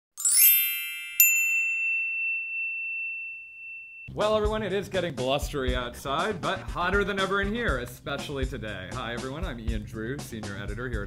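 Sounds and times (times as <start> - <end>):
sharp ding ringing: 0.2 - 4.1
shimmering high chime tones: 0.2 - 4.1.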